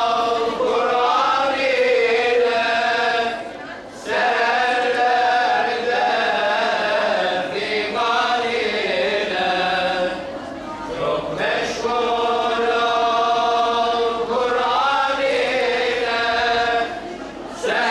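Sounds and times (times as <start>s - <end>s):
voices chanting: 0.0s - 17.9s.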